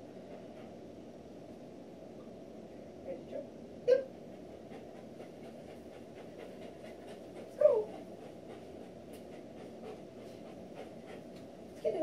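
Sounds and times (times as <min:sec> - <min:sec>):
dog panting: 0:00.0 - 0:01.2, 0:04.2 - 0:12.0.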